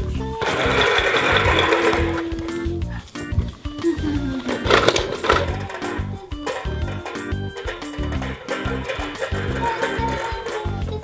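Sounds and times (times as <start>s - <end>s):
plastic wheels rolling on wooden floor: 0.0s - 11.0s.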